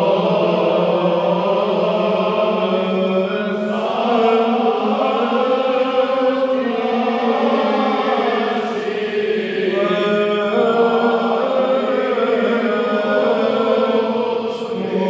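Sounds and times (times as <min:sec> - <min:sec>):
voices chanting over drone: 0:00.0 - 0:15.0.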